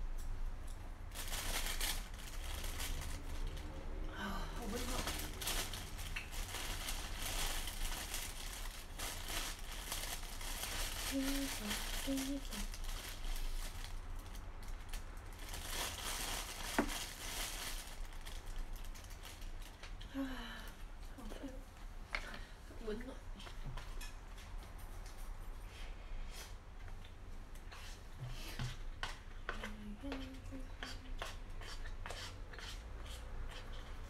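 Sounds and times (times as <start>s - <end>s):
plastic packaging crinkling: 1.1s - 3.7s, 4.6s - 20.0s.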